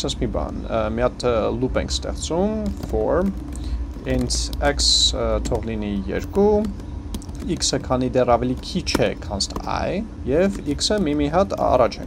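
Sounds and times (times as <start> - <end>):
keyboard typing clicks: 2.6 - 7.8, 8.5 - 9.8.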